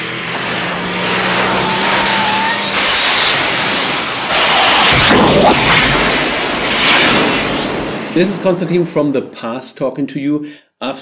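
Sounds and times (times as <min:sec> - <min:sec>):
loud rushing whoosh: 0:00.0 - 0:09.5.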